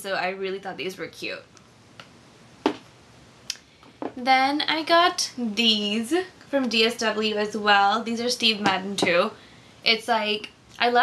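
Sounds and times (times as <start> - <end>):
shoes knocking when set down: 2.6 - 2.8.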